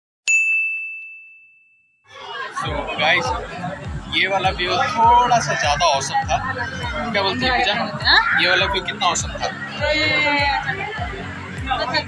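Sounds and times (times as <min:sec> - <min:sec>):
bright bell-like ding: 0:00.3 - 0:02.0.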